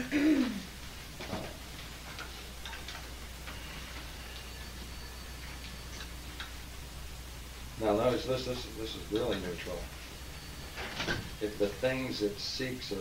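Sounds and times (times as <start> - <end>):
steady low hum: 0.0 - 13.0.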